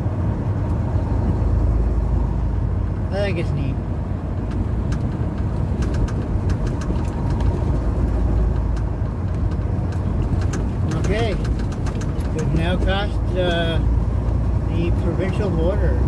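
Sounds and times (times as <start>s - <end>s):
road noise: 0.0s - 16.0s
truck engine rumble: 0.0s - 16.0s
man talking: 3.1s - 3.8s, 10.9s - 11.5s, 12.3s - 13.9s, 14.7s - 16.0s.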